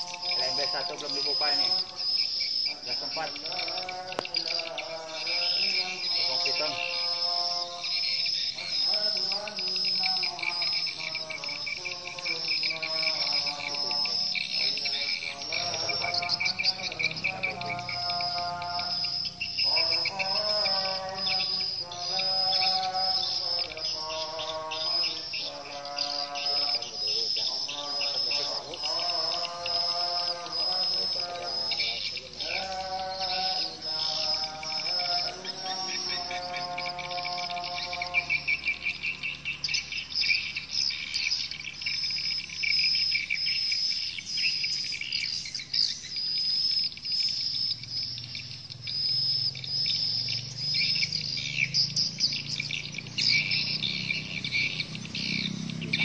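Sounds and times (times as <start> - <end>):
low warbling bird call: 0.0 - 56.0
swiftlets twittering: 0.0 - 56.0.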